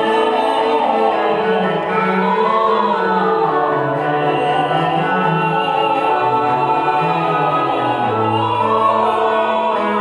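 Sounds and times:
choir singing sacred music: 0.0 - 10.0.

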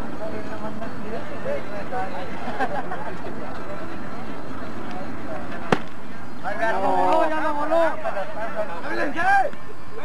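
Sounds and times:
voices chattering: 0.0 - 10.0
bat hitting softball: 5.7 - 6.0.

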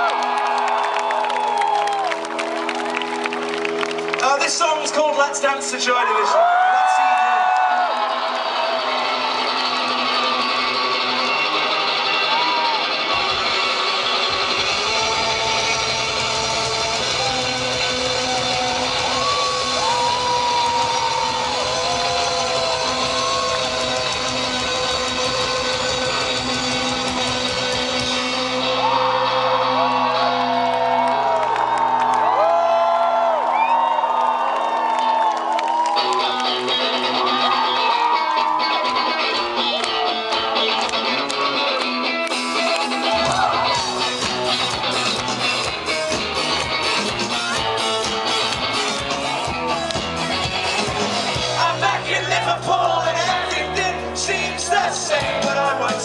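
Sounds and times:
electric guitar: 0.0 - 4.4, 6.4 - 32.7, 34.7 - 56.0
bass and drums: 8.8 - 31.4, 35.9 - 56.0.

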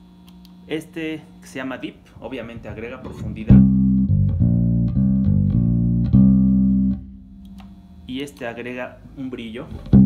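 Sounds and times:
electric bass plucked notes: 2.4 - 8.2, 9.7 - 10.0.

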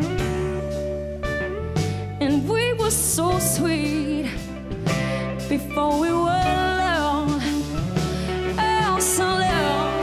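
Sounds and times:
live funk band music: 0.0 - 10.0
woman singing: 2.2 - 10.0.

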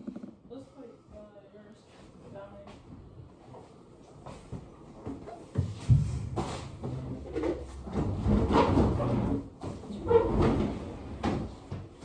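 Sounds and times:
boxes knocking and bumping: 0.0 - 0.5.

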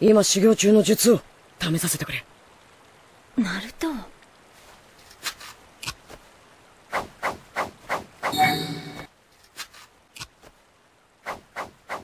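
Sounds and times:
quick swishing strokes: 6.9 - 8.4, 11.2 - 12.0.

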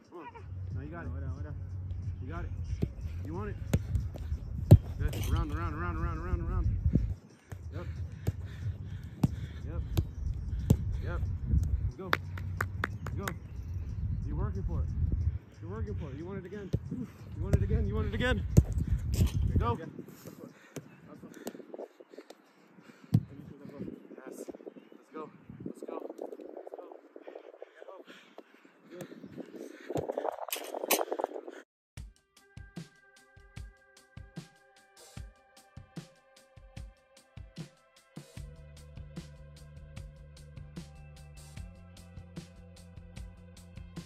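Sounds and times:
wind rumble on microphone: 0.8 - 20.2, 23.2 - 27.8, 29.1 - 31.6
soccer ball being kicked: 2.7 - 5.7, 7.0 - 11.7, 16.5 - 19.7, 23.1 - 23.4.

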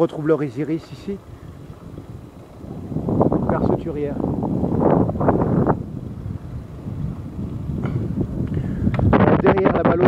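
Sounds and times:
road and wind noise: 0.0 - 10.0
wind on microphone: 0.0 - 10.0.

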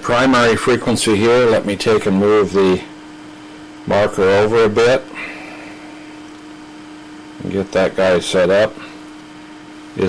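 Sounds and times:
constant hiss: 0.0 - 10.0
low electrical hum: 0.0 - 10.0.

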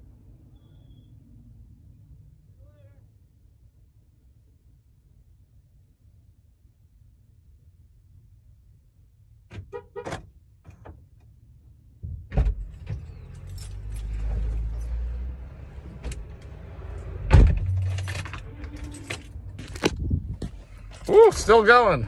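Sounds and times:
car engine rumble: 4.8 - 22.0
keys jangling: 12.7 - 15.2, 16.3 - 21.4
loud thump: 17.1 - 17.9.

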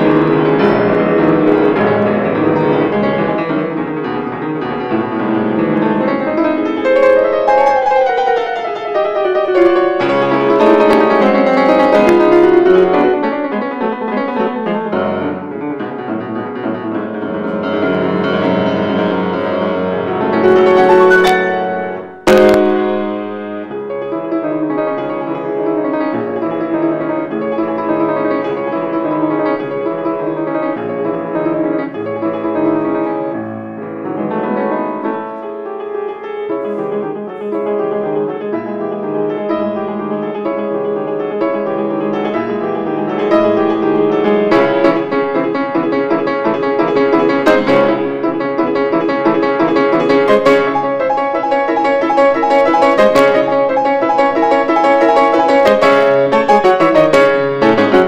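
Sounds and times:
grand piano fast passage: 0.0 - 58.0.

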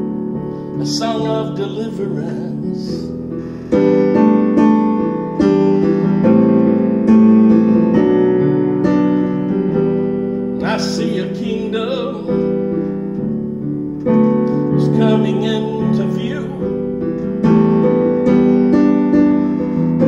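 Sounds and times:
slow piano chords: 0.0 - 20.0.

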